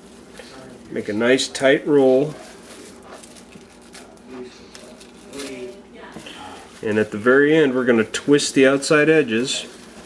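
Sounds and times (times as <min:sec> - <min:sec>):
cling film crinkling: 0:00.0 - 0:10.0.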